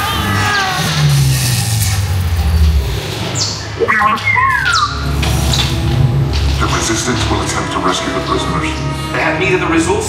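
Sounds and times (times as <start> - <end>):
low rumble: 0.0 - 10.0
sci-fi music: 0.0 - 10.0
electronic sweeps and whistling tones: 3.1 - 5.1.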